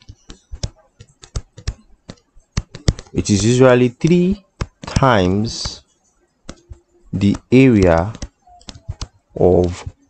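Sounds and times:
stylus tapping on writing surface: 0.0s - 3.2s, 4.4s - 5.8s, 6.4s - 10.0s.

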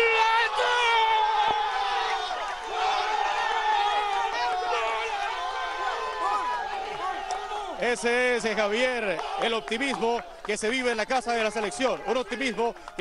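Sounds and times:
crowd cheering and shouting: 0.0s - 13.0s.

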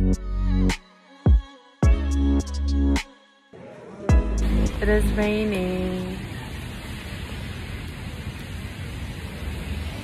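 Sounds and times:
rain hissing: 4.3s - 10.0s.

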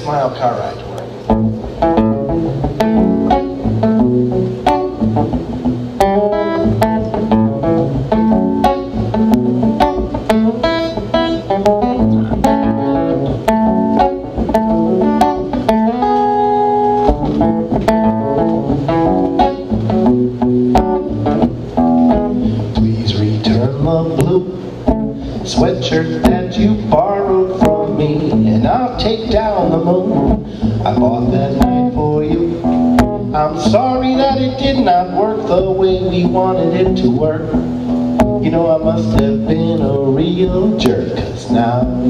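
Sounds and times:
acoustic guitar picking and strumming: 1.2s - 42.0s.

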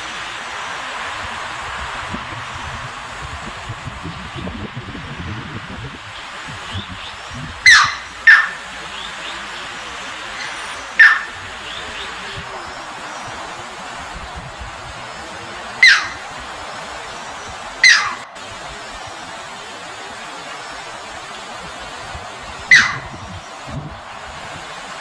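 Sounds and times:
shallow water flowing: 0.0s - 25.0s
heron calling: 6.1s - 13.9s, 15.0s - 18.4s, 22.5s - 23.8s.

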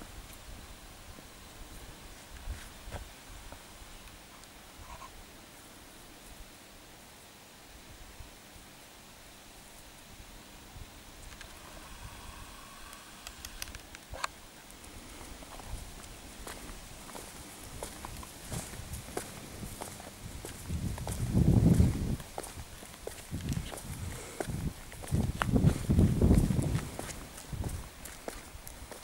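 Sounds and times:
footsteps on pavement: 15.4s - 29.0s.

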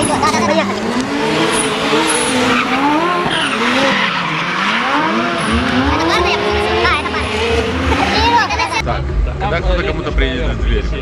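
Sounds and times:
car engine revving: 0.0s - 11.0s
low throbbing: 4.8s - 11.0s.

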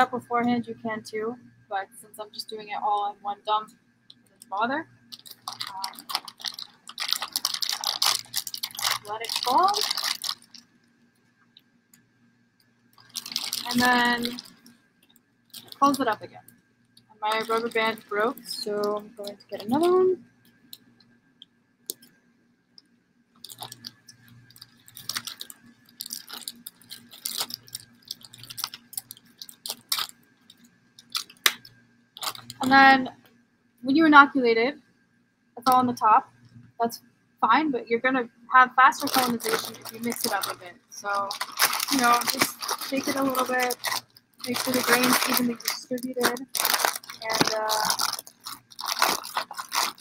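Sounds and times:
dense crackling: 3.6s - 10.8s, 12.9s - 21.0s, 23.4s - 32.9s, 38.9s - 50.0s
plastic bags crinkling: 4.4s - 10.7s, 13.0s - 16.5s, 17.2s - 20.1s, 23.4s - 32.9s, 38.9s - 50.0s
grain pouring: 46.4s - 50.0s.

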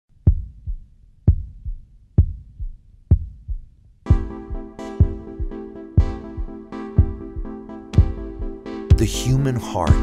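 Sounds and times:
heartbeat thumps: 0.1s - 9.3s.

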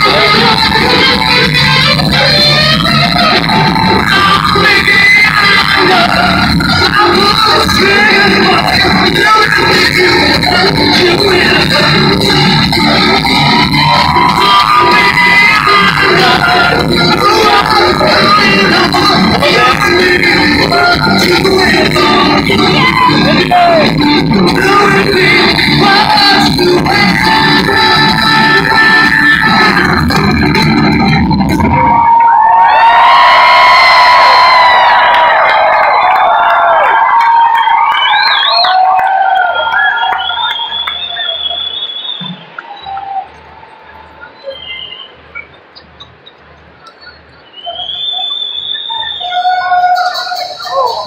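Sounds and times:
live rock band playing: 0.0s - 32.0s
crowd noise: 0.0s - 51.0s
whistles from crowd: 33.8s - 45.6s, 46.9s - 51.0s.

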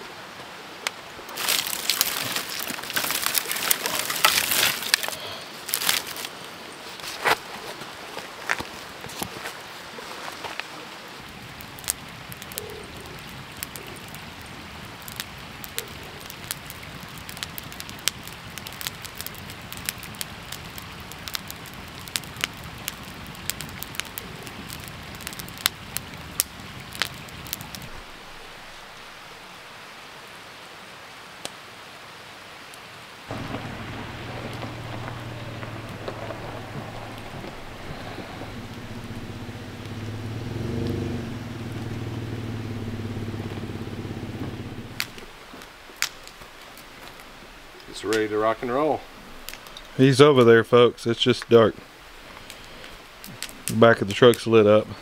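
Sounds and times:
campfire crackling and popping: 0.8s - 9.6s, 10.5s - 30.0s, 33.2s - 55.0s.

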